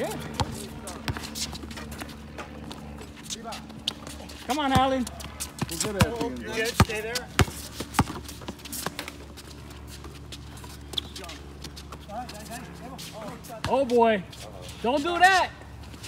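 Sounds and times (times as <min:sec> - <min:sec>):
basketball bouncing on hard court: 0:04.6 - 0:08.6.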